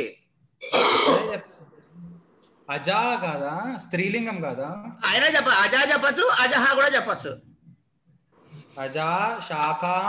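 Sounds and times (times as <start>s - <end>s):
person clearing throat: 0.6s - 1.5s.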